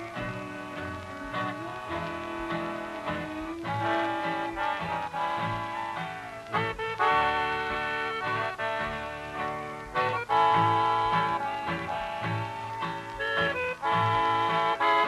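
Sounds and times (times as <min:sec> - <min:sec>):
old-time country band music: 0:00.0 - 0:15.0.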